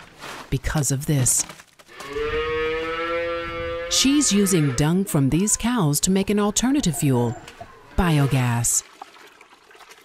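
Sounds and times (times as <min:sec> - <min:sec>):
cow mooing: 0:01.9 - 0:05.7.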